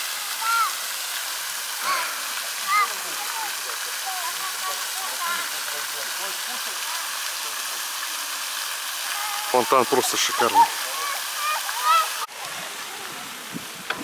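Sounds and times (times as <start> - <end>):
fountain water splashing: 0.0 - 14.0.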